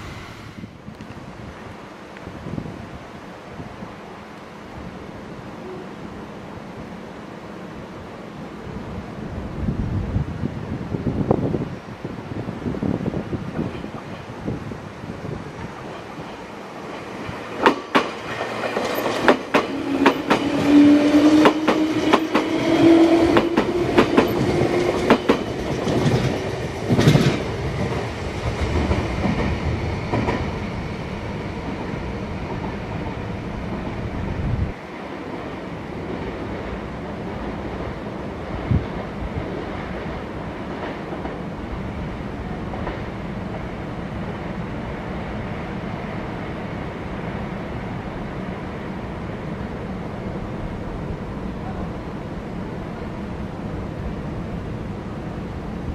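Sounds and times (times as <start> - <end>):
low whine: 0.0 - 1.2
train rumble: 0.0 - 1.8, 12.4 - 55.9
train wheels clacking over rail joints: 17.6 - 28.0.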